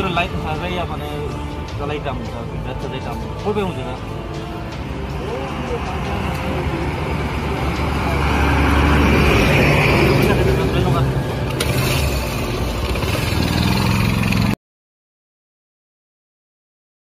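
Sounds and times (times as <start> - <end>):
low engine hum: 4.6 - 14.6
truck passing on road: 4.6 - 14.6.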